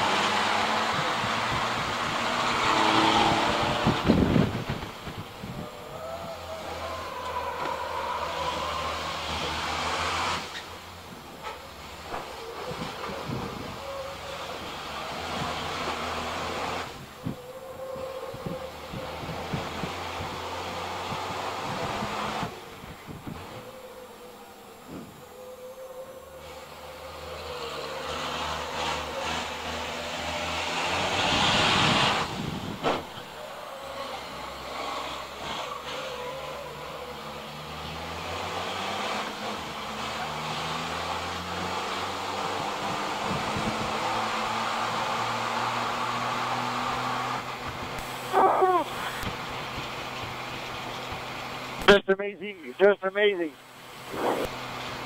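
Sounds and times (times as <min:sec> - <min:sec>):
truck engine drone from cab: 0:00.0 - 0:55.0
loud rushing surge: 0:53.8 - 0:55.0
short loud sweeping sounds: 0:53.9 - 0:54.7.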